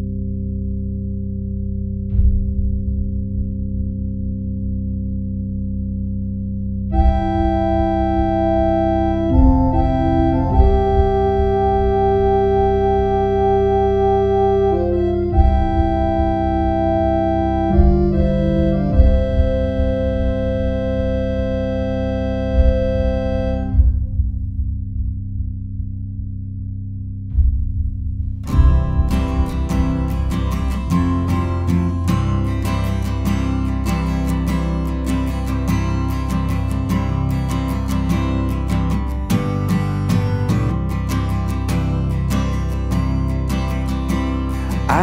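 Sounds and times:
low throbbing bass: 0:00.0 - 0:45.0
organ chords: 0:04.4 - 0:24.0, 0:28.5 - 0:45.0.

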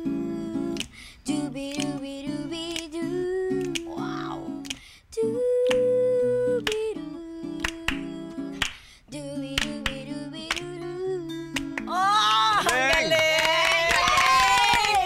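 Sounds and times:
acoustic guitar chords: 0:00.0 - 0:12.6
boy scat-singing: 0:00.0 - 0:15.0
people clapping: 0:07.6 - 0:08.8, 0:09.6 - 0:10.7, 0:11.6 - 0:15.0.

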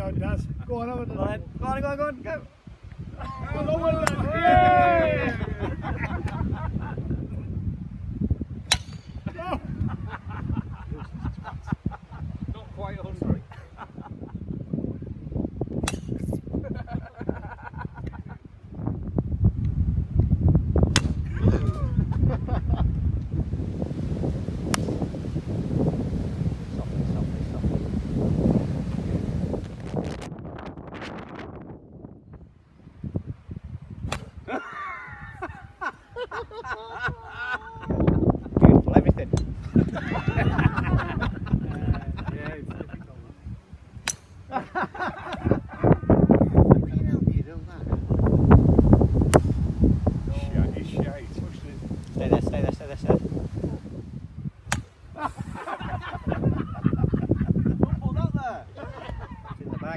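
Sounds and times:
wind rumble on microphone: 0:00.0 - 0:59.9
laughter: 0:03.1 - 0:03.6, 0:04.6 - 0:07.5, 0:09.2 - 0:12.4, 0:13.4 - 0:14.7, 0:16.5 - 0:18.6, 0:21.3 - 0:23.0, 0:34.4 - 0:38.7, 0:39.6 - 0:43.3, 0:44.5 - 0:46.3, 0:55.1 - 0:59.9
golf club striking ball: 0:04.0 - 0:04.4, 0:08.6 - 0:09.4, 0:15.8 - 0:16.4, 0:20.8 - 0:21.3, 0:24.6 - 0:25.2, 0:34.0 - 0:34.4, 0:44.0 - 0:44.5, 0:49.2 - 0:49.6, 0:54.7 - 0:55.0.

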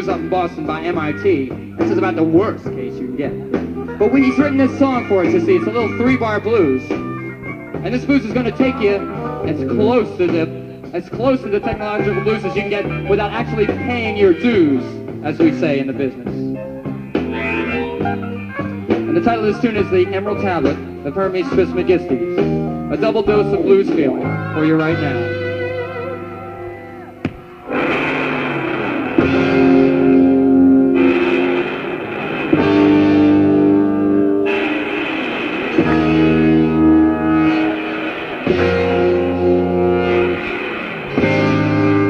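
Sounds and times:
electric guitar: 0:00.0 - 0:42.0
live band playing slow blues: 0:00.0 - 0:42.0.

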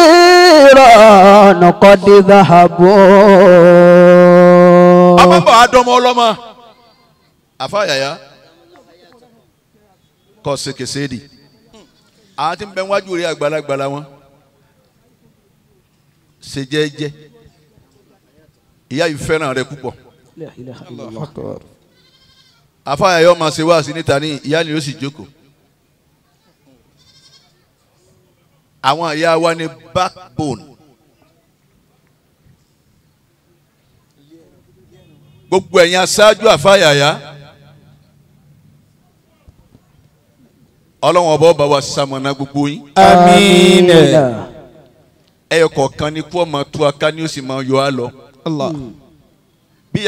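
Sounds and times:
man chanting over a microphone: 0:00.0 - 0:06.5, 0:41.4 - 0:44.8.

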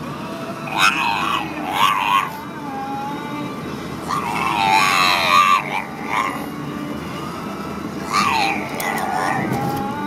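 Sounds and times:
car road noise: 0:00.0 - 0:10.0
dog whining: 0:00.7 - 0:02.4, 0:04.0 - 0:06.5, 0:08.0 - 0:09.9.

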